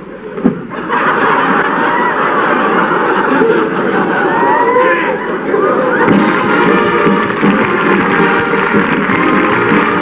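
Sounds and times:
studio audience laughing: 0.7s - 4.5s.

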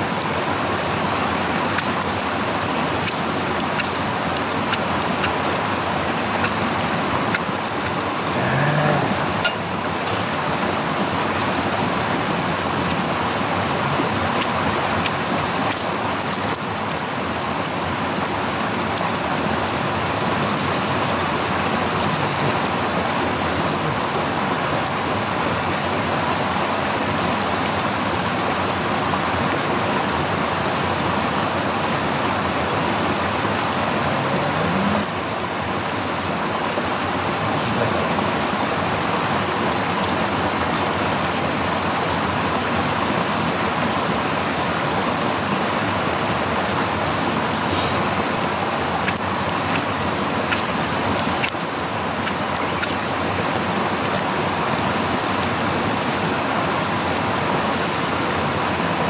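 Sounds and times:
flowing water: 0.0s - 59.0s.

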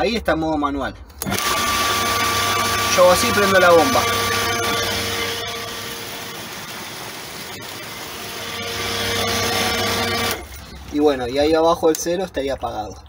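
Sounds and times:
pump motor humming: 1.2s - 11.0s.

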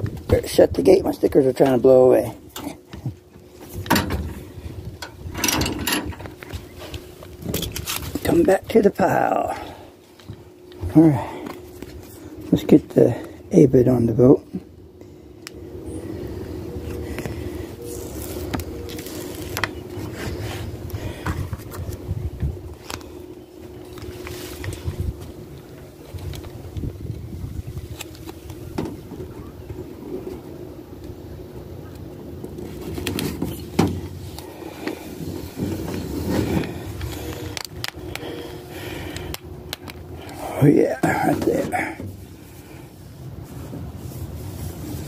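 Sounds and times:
steady low hum: 0.0s - 45.0s.

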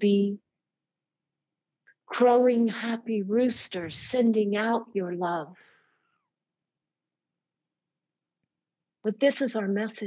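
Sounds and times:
woman's voice: 0.0s - 0.4s, 2.1s - 5.6s, 9.1s - 10.0s.

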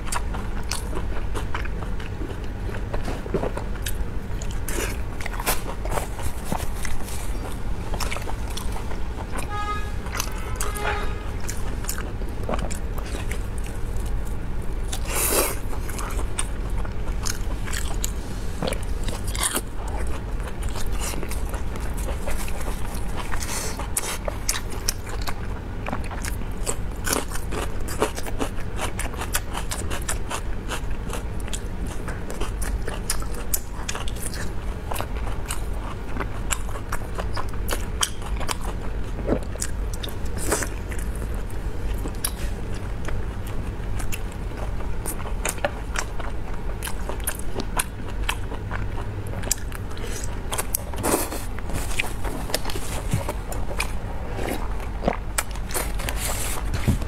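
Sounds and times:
close biting and chewing: 0.0s - 9.4s, 11.4s - 57.0s.

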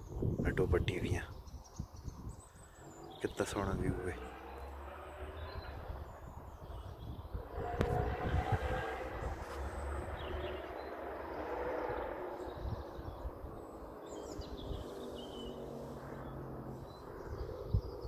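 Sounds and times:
wind rumble on microphone: 0.0s - 18.0s
distant rushing noise passing: 2.7s - 18.0s.

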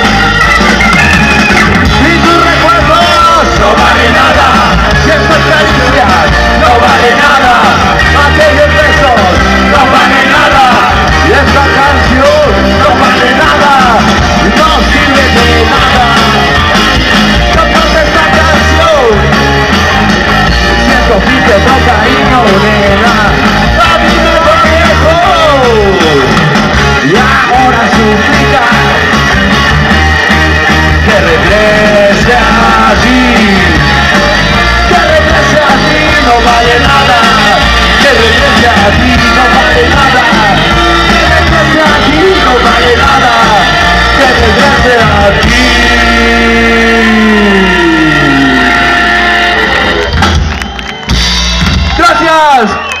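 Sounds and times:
bass: 0.0s - 53.0s
distorted electric guitars: 0.0s - 53.0s
drums: 0.0s - 53.0s
garage rock band playing live: 0.0s - 53.0s
male singer: 1.9s - 16.7s, 17.4s - 19.3s, 20.6s - 29.2s, 30.9s - 49.0s.

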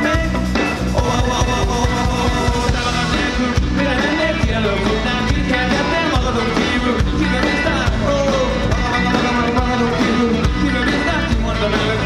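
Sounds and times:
distorted electric guitars: 0.0s - 12.0s
drum kit beat: 0.0s - 12.0s.

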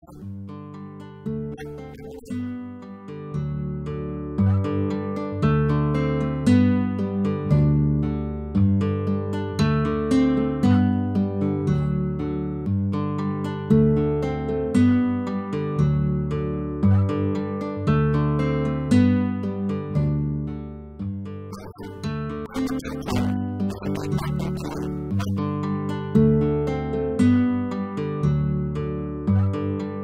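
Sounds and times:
acoustic guitar plucked notes: 0.0s - 30.0s.

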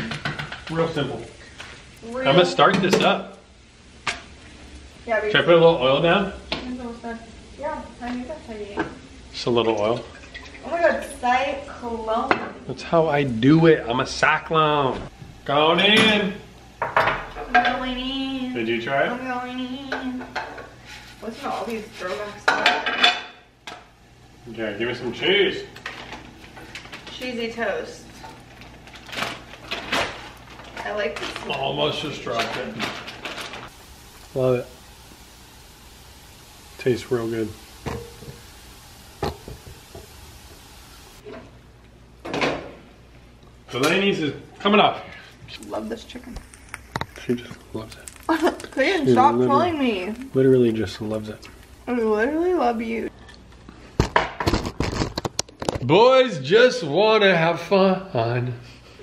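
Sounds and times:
low steady hum: 12.8s - 53.8s
spatula scraping frying pan: 20.2s - 23.4s.

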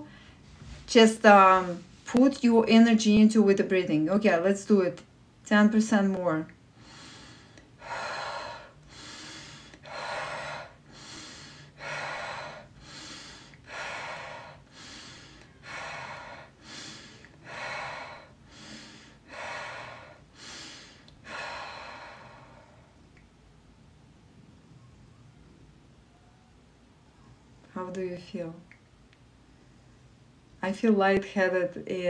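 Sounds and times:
woman breathing rapidly: 6.7s - 23.1s.

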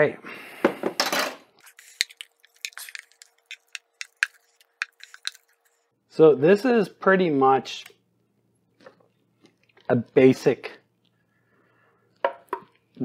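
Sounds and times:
spoon scraping metal bowl: 1.6s - 5.8s.

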